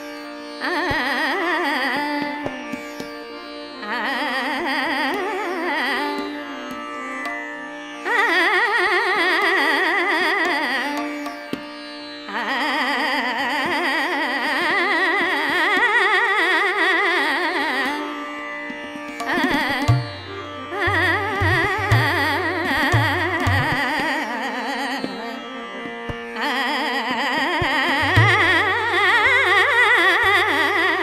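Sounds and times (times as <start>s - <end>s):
tanpura and harmonium drone: 0.0s - 31.0s
woman singing: 0.6s - 2.8s, 3.8s - 6.9s, 8.0s - 11.3s, 12.3s - 18.2s, 19.2s - 31.0s
deep tabla strokes: 19.2s - 23.8s.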